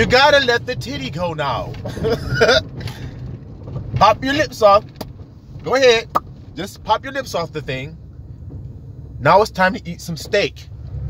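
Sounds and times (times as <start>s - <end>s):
car cabin rumble: 0.0s - 11.0s
man laughing: 1.8s - 2.8s.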